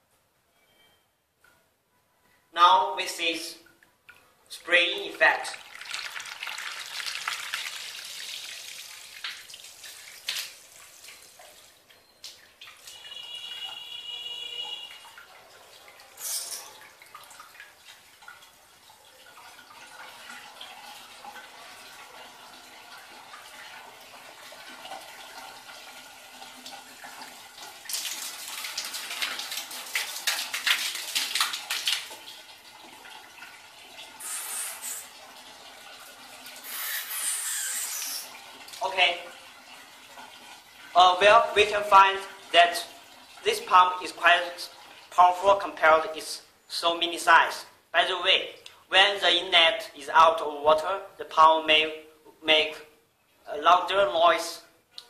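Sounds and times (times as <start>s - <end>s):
water jet splashing on tiles: 5.5s - 11.7s, 26.6s - 32.6s, 34.1s - 35.2s, 36.4s - 38.8s.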